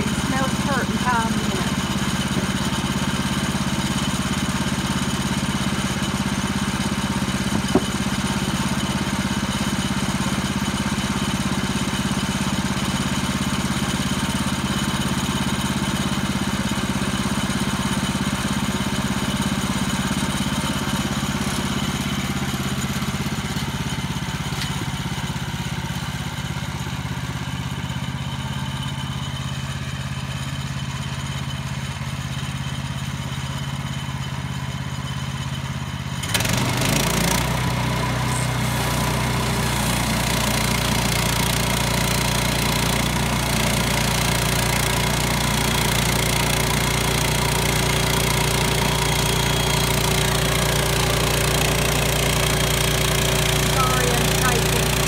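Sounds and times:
gas engine running: 0:00.0 - 0:55.0.

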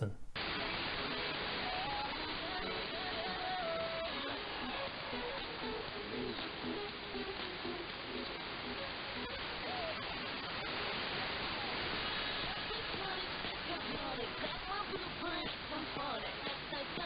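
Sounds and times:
faint radio voice: 0:00.0 - 0:00.2
faint radio music: 0:00.0 - 0:17.0
radio static hiss: 0:00.0 - 0:17.0.

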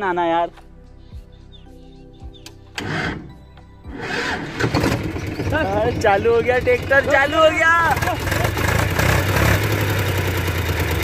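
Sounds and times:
tractor engine cranking: 0:02.7 - 0:11.0
tractor engine running: 0:03.9 - 0:11.0.

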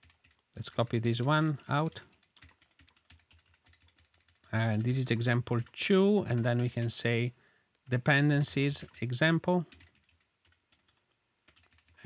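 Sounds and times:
computer keyboard keystrokes: 0:00.0 - 0:04.9, 0:05.5 - 0:07.0, 0:09.7 - 0:12.0.

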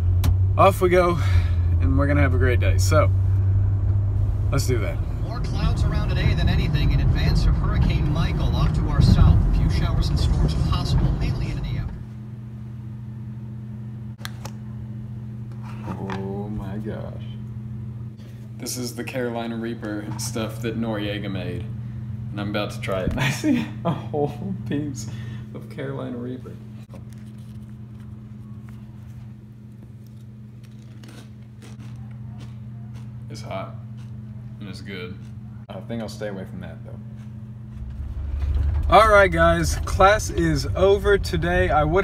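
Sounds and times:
machine electrical hum: 0:00.0 - 0:42.0
chip crunching: 0:26.9 - 0:34.2.

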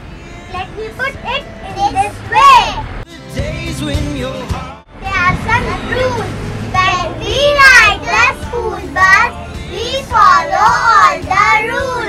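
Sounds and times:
young children speaking: 0:00.5 - 0:02.9, 0:05.0 - 0:12.0.

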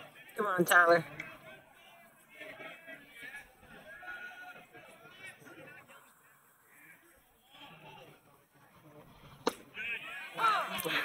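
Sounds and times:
baseball smacking into mitt: 0:09.4 - 0:09.7.

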